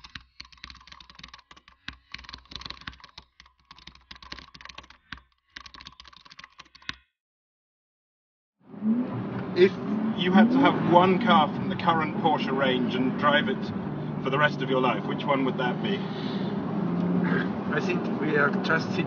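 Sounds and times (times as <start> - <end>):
keyboard key clicks: 0.0 - 7.0
car engine: 8.6 - 19.0
man talking: 9.6 - 16.1, 17.3 - 19.0.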